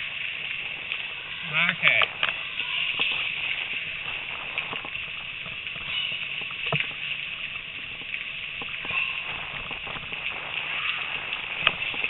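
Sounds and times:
bicycle rolling hiss: 0.0s - 12.0s.

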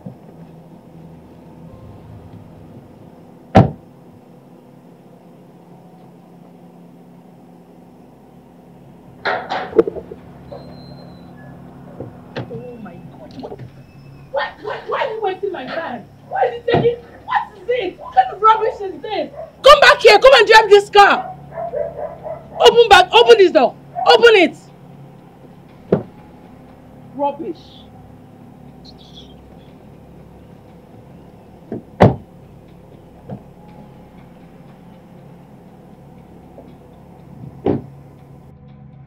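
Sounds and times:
steady low hum: 0.0s - 39.0s
car door shutting: 3.5s - 3.8s, 37.4s - 38.0s
metal gate clanking: 9.2s - 14.9s
voices: 9.4s - 37.8s.

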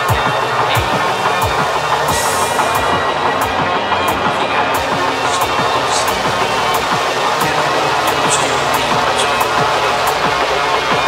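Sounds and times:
drum and bass music: 0.0s - 11.0s.

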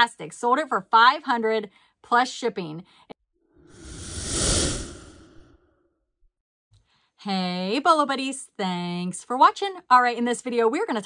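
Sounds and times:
whoosh: 3.6s - 5.7s.

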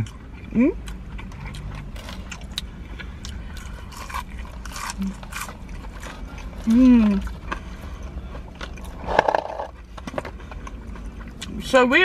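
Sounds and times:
chewing crispy fried food: 0.0s - 11.7s
low steady rumble: 0.0s - 12.0s.

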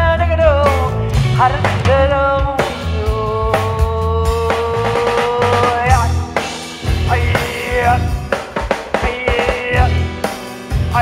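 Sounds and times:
drum kit playing: 0.0s - 11.0s
electric bass line: 0.0s - 11.0s.

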